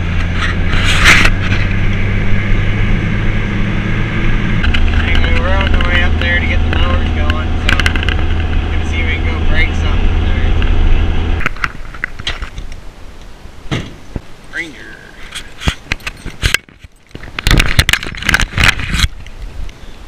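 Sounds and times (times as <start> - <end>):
vehicle engine and road noise: 0.0 - 20.0.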